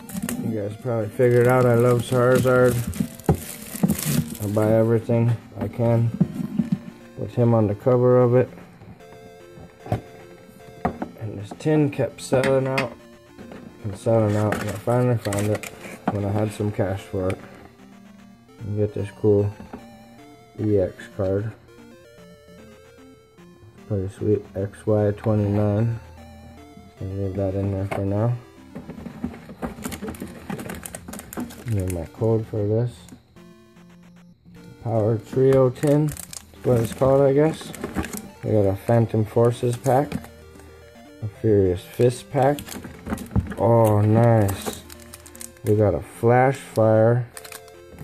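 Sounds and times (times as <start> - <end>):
packaging clicks and crinkles: 0.0 - 7.4, 12.4 - 17.8, 27.6 - 32.3, 35.2 - 45.8, 47.3 - 48.0
faint background music: 0.0 - 48.0.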